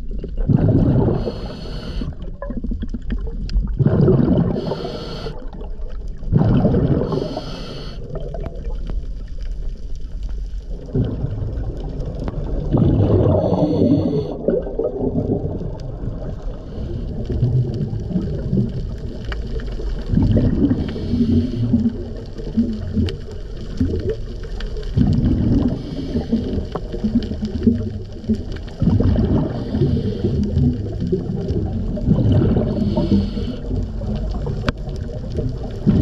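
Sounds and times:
exhaled bubbles gurgling: 0:00.0 - 0:36.0
low underwater rumble: 0:00.0 - 0:36.0.

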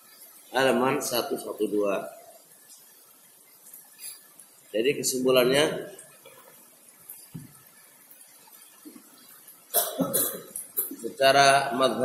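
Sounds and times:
man coughing: 0:09.8 - 0:11.0.

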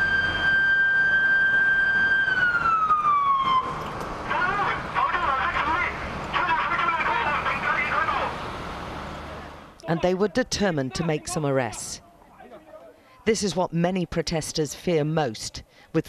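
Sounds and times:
siren high tone: 0:00.0 - 0:03.8.

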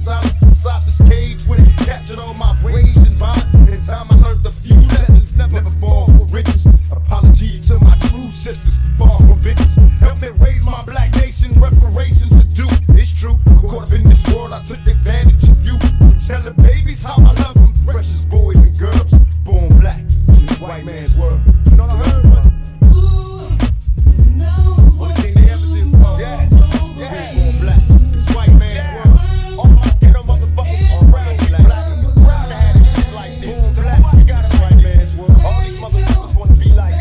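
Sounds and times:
man rapping over a beat: 0:00.0 - 0:37.0.

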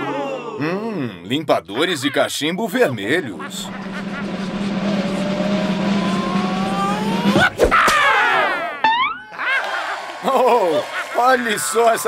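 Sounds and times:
low hum with rising whine: 0:03.2 - 0:07.6.

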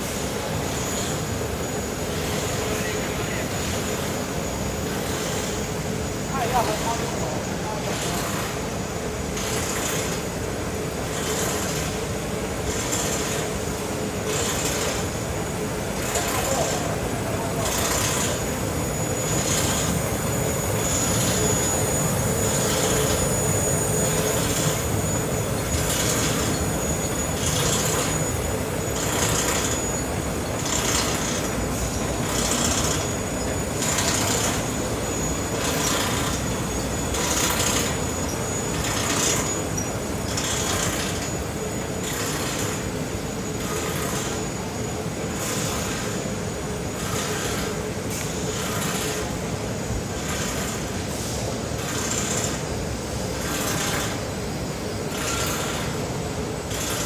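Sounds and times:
machinery humming: 0:00.0 - 0:57.0.

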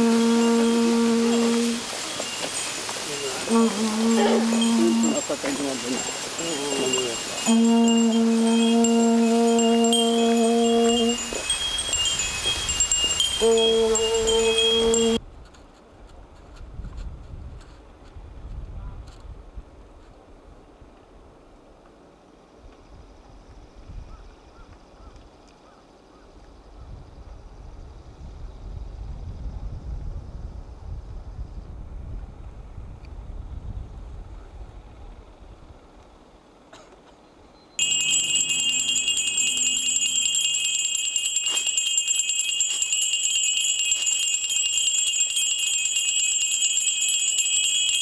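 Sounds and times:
small bells jingling: 0:00.0 - 0:15.2, 0:37.8 - 0:48.0
wind rumble on microphone: 0:06.2 - 0:21.6, 0:22.6 - 0:25.3, 0:26.4 - 0:36.2.

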